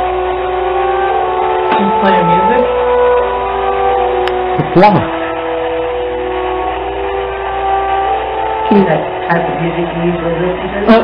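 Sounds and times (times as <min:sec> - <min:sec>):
held melodic chord tones: 0:00.0 - 0:11.0.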